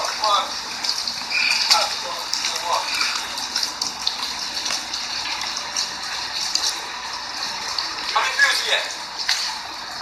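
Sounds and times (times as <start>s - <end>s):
small water splashes: 0.0s - 10.0s
water running in pool: 0.0s - 10.0s.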